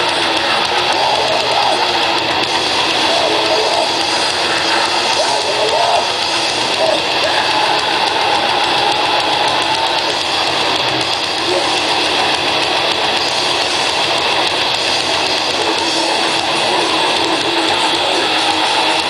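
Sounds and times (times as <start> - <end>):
grindcore band playing live: 0.0 - 19.0.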